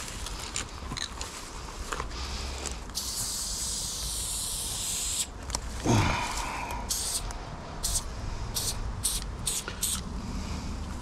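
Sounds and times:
spray paint can hissing: 2.9 - 5.4, 6.8 - 10.1.

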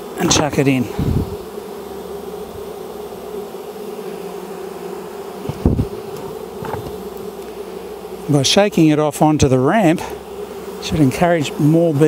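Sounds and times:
honeybees buzzing: 0.0 - 12.0
dull knock: 5.5 - 7.0.

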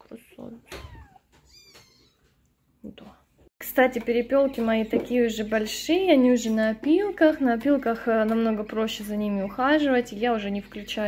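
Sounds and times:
cat meowing: 0.7 - 2.3.

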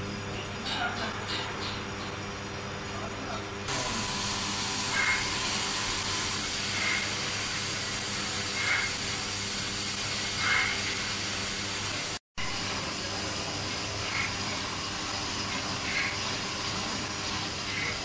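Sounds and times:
cutting torch hissing: 3.7 - 18.0.

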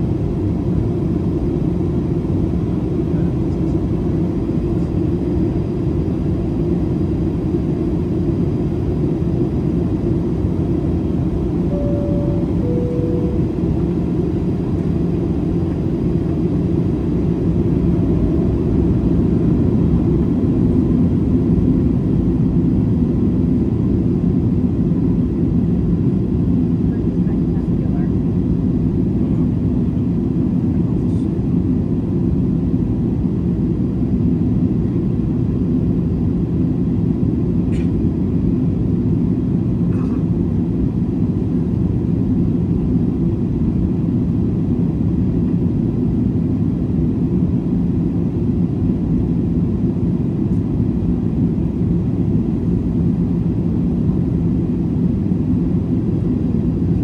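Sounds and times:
airplane cabin engine rumble: 0.0 - 57.0
two-note cabin chime: 11.7 - 13.9.

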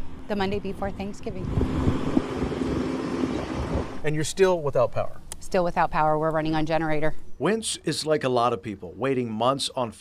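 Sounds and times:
loader engine running: 0.0 - 4.1.

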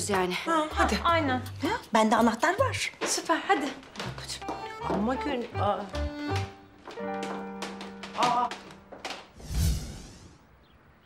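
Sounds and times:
transition whoosh: 9.4 - 10.5.

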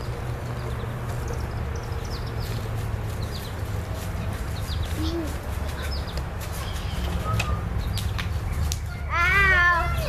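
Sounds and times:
girl's wordless call: 9.0 - 10.0.

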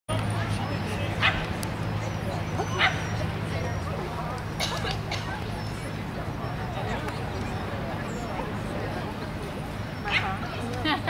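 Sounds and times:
dog yipping: 2.6 - 3.2, 10.0 - 10.4.

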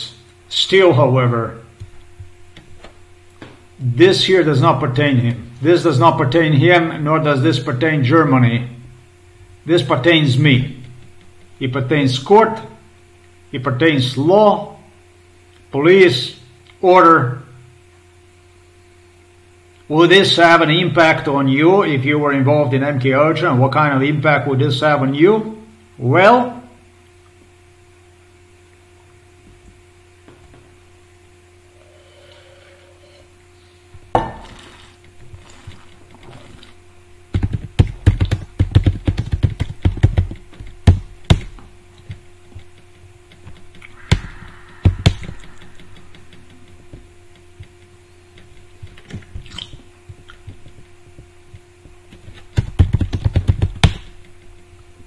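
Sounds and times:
steady electrical hum: 0.0 - 55.0.

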